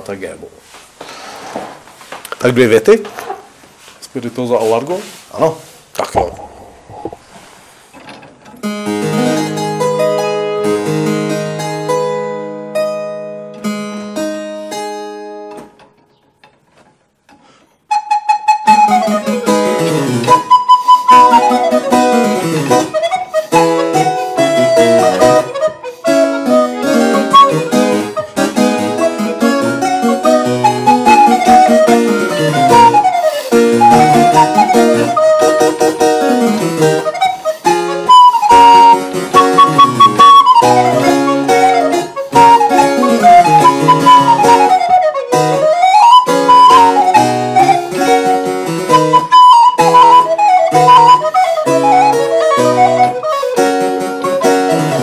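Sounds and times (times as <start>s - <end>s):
recorder playing: 8.6s - 15.6s, 17.9s - 55.0s
harpsichord chords: 8.6s - 16.4s, 17.9s - 55.0s.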